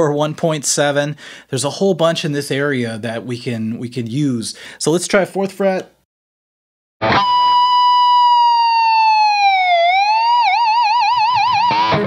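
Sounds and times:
electric guitar harmonic with whammy bar: 7.0s - 12.0s.

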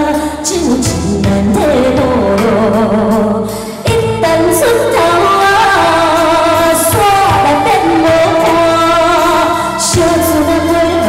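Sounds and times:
instrumental backing music: 0.0s - 11.0s
woman singing into microphone: 0.0s - 11.0s.

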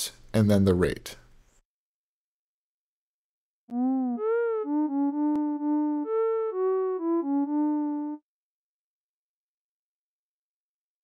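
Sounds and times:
synthesizer lead melody: 3.7s - 8.2s.

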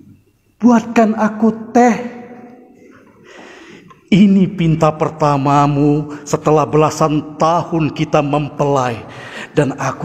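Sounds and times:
voice echo: 0.0s - 10.0s
man breathing in: 3.1s - 4.0s, 9.1s - 9.6s.

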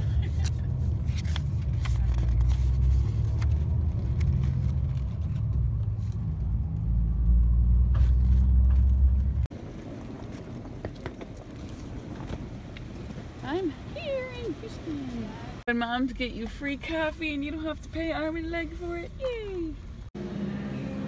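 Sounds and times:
bus engine and road drone: 0.0s - 21.0s
paper rustling: 0.2s - 6.2s.

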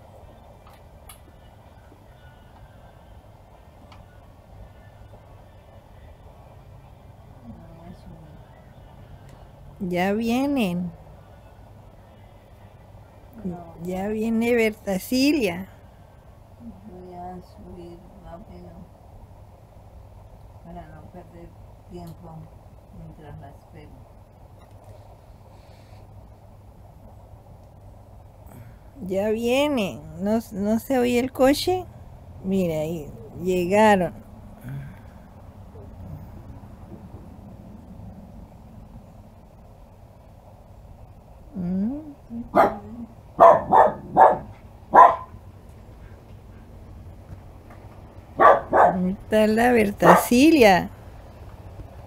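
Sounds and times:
faint low rumble: 0.0s - 52.0s
small dog barking: 42.5s - 45.4s, 48.4s - 49.0s, 50.0s - 50.4s.

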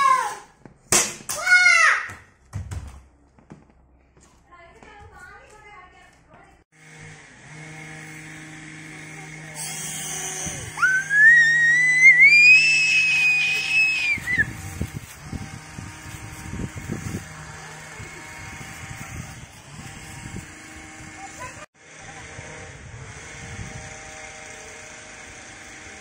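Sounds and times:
toy helicopter rotor motor whining: 6.8s - 26.0s.

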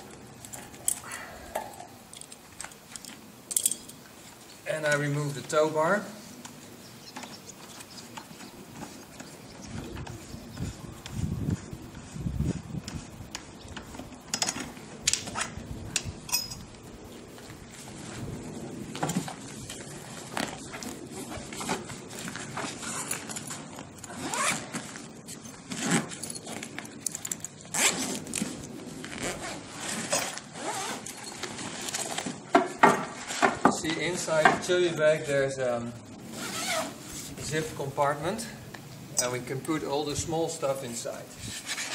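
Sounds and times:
small metal parts clicking: 2.1s - 4.0s
zipper pulled open: 22.6s - 25.0s, 27.6s - 32.3s, 36.2s - 37.3s.

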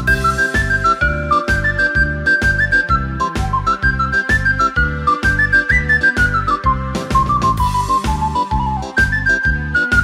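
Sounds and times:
backing track with pulsing beat: 0.0s - 10.0s
whistle playing quick melody: 0.0s - 10.0s.

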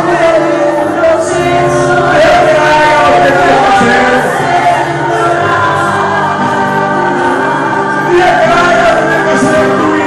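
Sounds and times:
congregation singing over music: 0.0s - 10.0s.

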